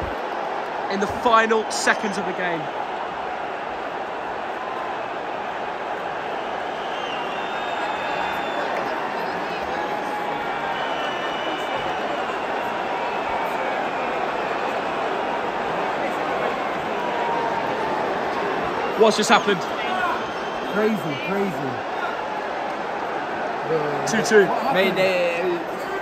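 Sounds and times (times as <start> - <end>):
stadium crowd cheering: 0.0 - 26.0.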